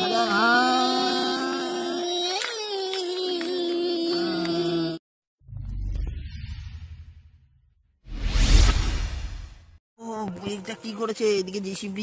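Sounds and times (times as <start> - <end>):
whoosh sound effect: 8.1 - 9.6.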